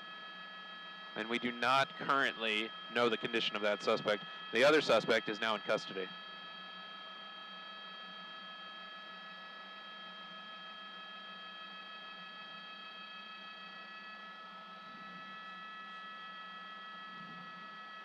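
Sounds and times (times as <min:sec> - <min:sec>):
high whining tones: 0:01.2 - 0:06.0.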